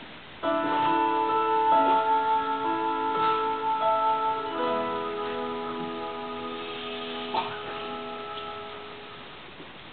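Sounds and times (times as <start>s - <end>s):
held music chord: 0.4s - 9.4s.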